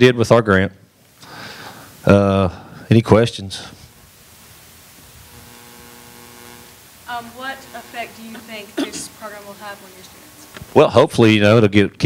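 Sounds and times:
low electrical hum: 0.0s - 12.0s
steady hiss: 0.0s - 12.0s.

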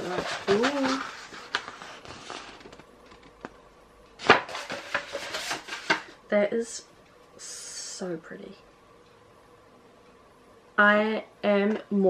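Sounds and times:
paper rustling: 0.0s - 3.4s, 4.2s - 6.1s.

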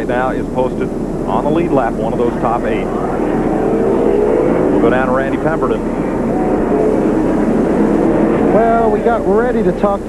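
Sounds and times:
man talking: 0.0s - 3.4s, 4.8s - 5.9s, 8.5s - 10.0s
race car engines: 0.0s - 10.0s.

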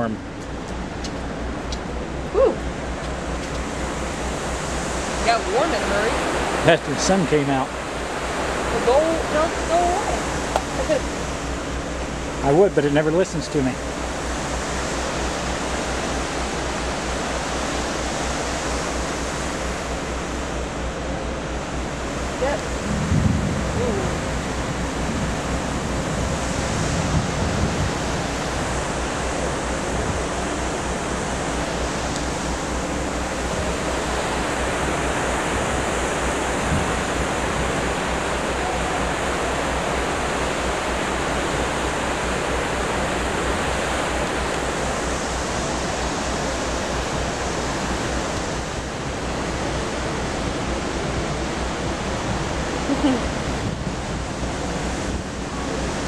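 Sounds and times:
churning water of ship wake: 0.0s - 56.0s
wind buffeting microphone: 20.6s - 56.0s.

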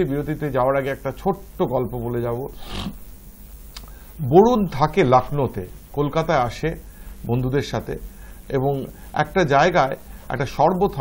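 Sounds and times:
man speaking: 0.0s - 3.0s.

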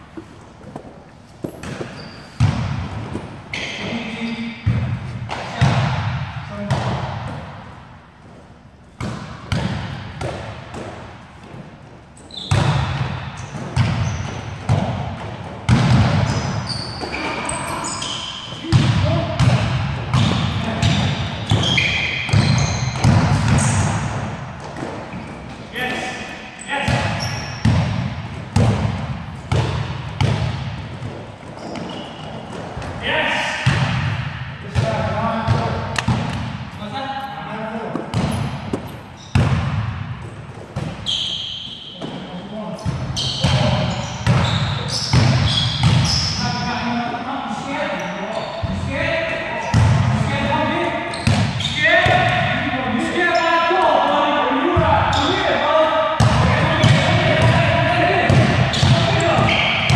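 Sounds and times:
sneaker squeaks: 0.0s - 5.7s, 8.2s - 28.8s, 29.4s - 33.8s, 34.8s - 39.6s, 40.4s - 47.0s, 47.8s - 52.5s, 54.5s - 55.6s, 56.2s - 59.9s
players' voices echoing: 0.0s - 59.9s
basketball bouncing on court: 0.8s - 3.7s, 4.6s - 7.5s, 9.0s - 11.6s, 12.3s - 26.0s, 26.8s - 36.7s, 37.9s - 42.2s, 42.8s - 46.4s, 49.7s - 50.2s, 51.1s - 52.6s, 56.2s - 59.9s.

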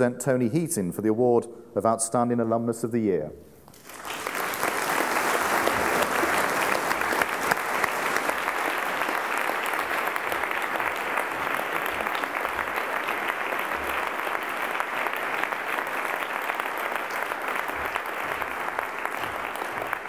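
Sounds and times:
audience applauding: 3.7s - 20.0s.

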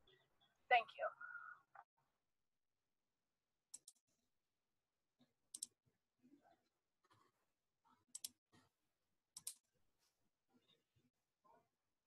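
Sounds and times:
computer mouse clicks: 3.7s - 4.0s, 5.5s - 5.8s, 8.1s - 8.4s, 9.4s - 9.6s.

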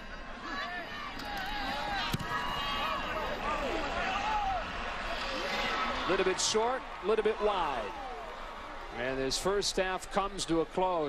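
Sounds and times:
stadium crowd calling out: 0.0s - 11.0s.

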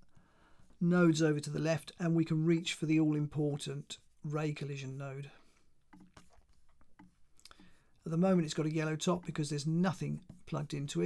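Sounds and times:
computer mouse clicks: 5.9s - 7.6s.

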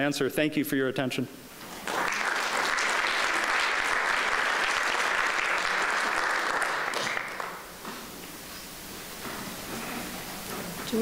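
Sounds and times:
audience applauding: 1.7s - 7.7s.

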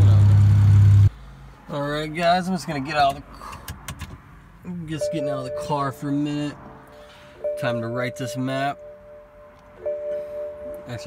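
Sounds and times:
car warning chime: 4.9s - 6.6s, 7.4s - 11.0s.

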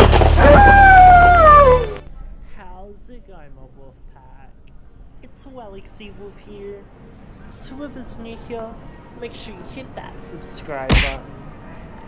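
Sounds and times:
music: 0.0s - 2.1s
wolf howling: 0.4s - 2.0s.

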